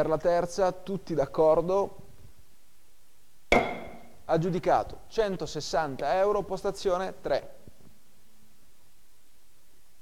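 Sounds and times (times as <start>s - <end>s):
gavel striking with ringing: 3.5s - 4.2s.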